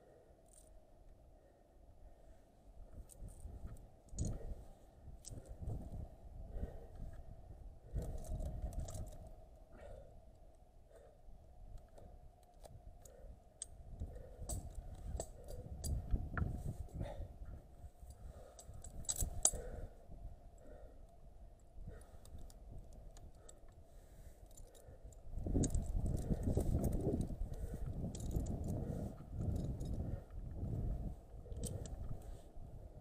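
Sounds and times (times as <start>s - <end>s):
carabiners clicking on rope: 0.4s - 0.8s, 2.9s - 7.2s, 7.8s - 33.0s
metal climbing hardware clinking: 3.0s - 4.6s, 7.8s - 9.4s, 11.7s - 19.9s, 21.6s - 32.4s.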